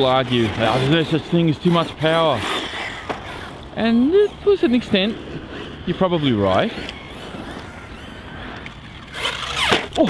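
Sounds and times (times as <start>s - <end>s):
electric motor whine: 0.0s - 10.0s
tyres spinning on loose dirt: 0.0s - 10.0s.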